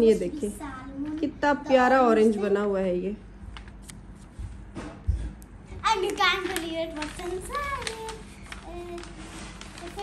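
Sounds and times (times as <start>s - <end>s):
paper rustling: 3.5s - 4.6s, 5.8s - 10.0s
child's high voice: 5.8s - 10.0s.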